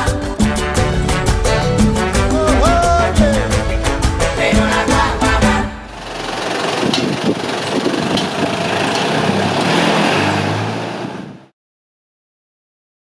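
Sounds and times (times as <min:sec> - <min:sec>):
truck engine pulling away: 0:00.2 - 0:11.5.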